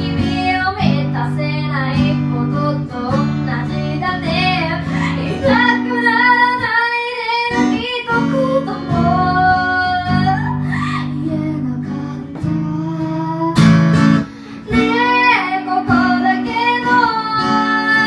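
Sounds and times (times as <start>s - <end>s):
strummed guitar: 0.0s - 18.0s
woman singing: 0.0s - 18.0s.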